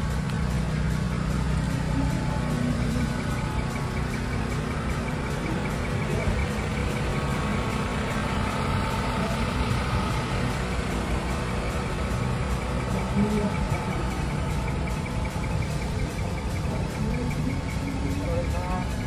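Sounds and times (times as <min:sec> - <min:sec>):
diesel truck engines idling: 0:00.0 - 0:19.0.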